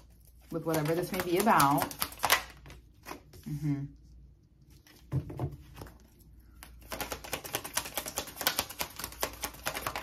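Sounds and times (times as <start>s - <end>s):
cards being shuffled: 0.0s - 3.4s, 4.8s - 10.0s.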